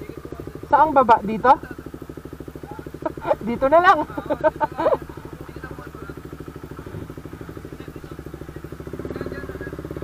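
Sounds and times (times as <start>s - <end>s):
people talking and laughing: 0.0s - 9.8s
motorcycle engine running: 0.0s - 10.0s.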